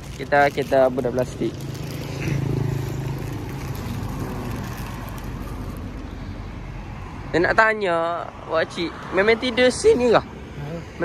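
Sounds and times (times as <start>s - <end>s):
motorcycle passing: 0.0s - 7.5s
road traffic rush: 0.0s - 11.0s.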